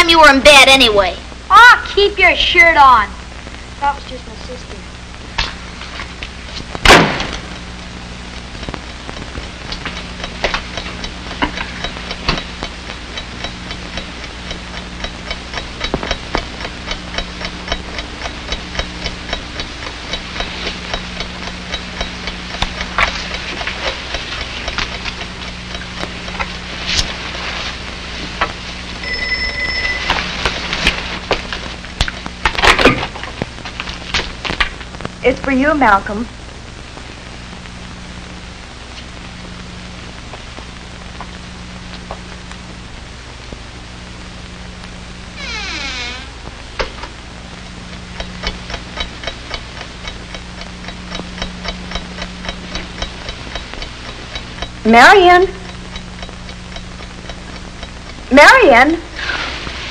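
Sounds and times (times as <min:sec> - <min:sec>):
film hiss and crackles: 0:00.0 - 0:59.9
mains hum: 0:00.0 - 0:59.9
telephone ringing: 0:29.0 - 0:30.8
door shutting: 0:45.4 - 0:47.0.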